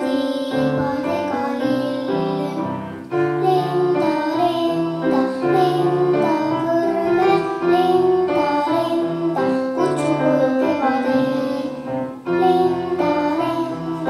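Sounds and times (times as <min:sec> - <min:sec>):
girl singing into a microphone: 0:00.0 - 0:14.0
piano accompaniment: 0:00.0 - 0:14.0.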